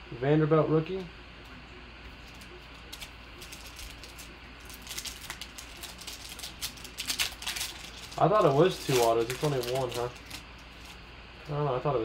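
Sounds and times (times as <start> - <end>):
foil wrapper crinkling and tearing: 2.2 - 11.6.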